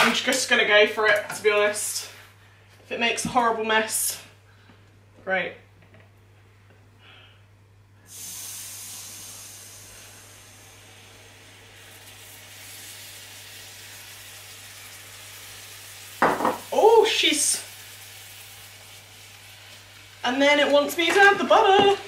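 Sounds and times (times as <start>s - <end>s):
hot caramel hissing and sizzling: 8.0s - 22.0s.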